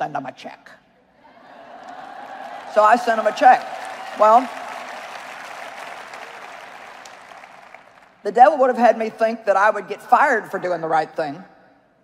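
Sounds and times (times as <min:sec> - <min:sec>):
audience applauding: 0:01.8 - 0:08.2.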